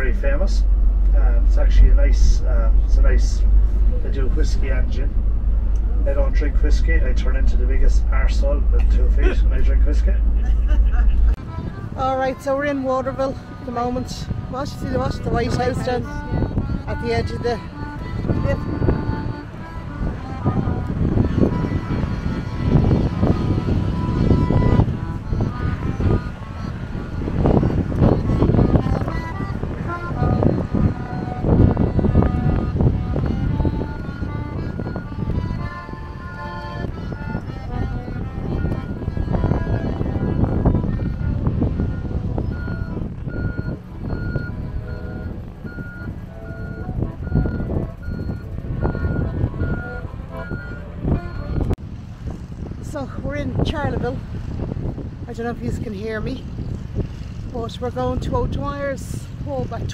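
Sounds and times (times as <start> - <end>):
tune of short notes: 0.0 - 51.8
wind rumble on microphone: 0.0 - 59.9.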